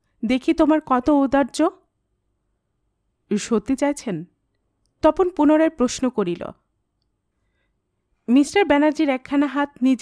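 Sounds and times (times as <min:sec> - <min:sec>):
woman reading aloud: 0:00.2 - 0:01.8, 0:03.3 - 0:04.3, 0:05.0 - 0:06.6, 0:08.3 - 0:10.0.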